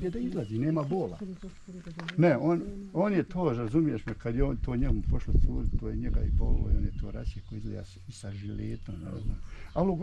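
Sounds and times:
man talking: 0.0 - 1.2, 2.2 - 10.0.

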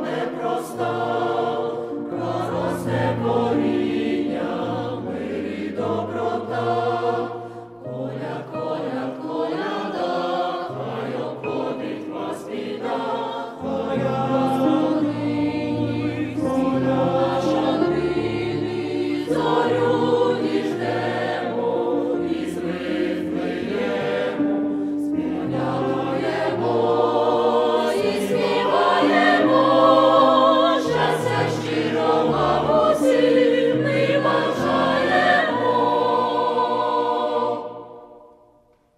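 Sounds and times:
choir singing a carol: 0.0 - 38.8.

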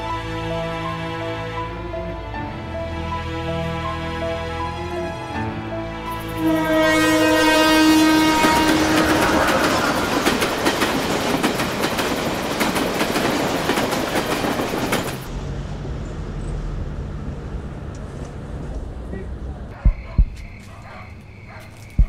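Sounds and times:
train rushing past: 4.9 - 19.7
train horn: 5.7 - 10.6
train wheels clacking on rails: 8.4 - 15.3.

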